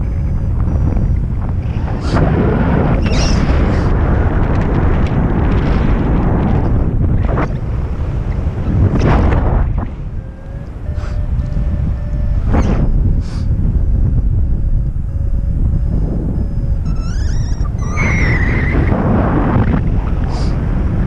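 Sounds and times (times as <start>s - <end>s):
wavering high tone: 0.0s - 2.2s, 7.4s - 20.1s
faint beeping tones: 0.0s - 21.0s
wind buffeting microphone: 0.0s - 21.0s
rising chirps: 14.0s - 18.9s.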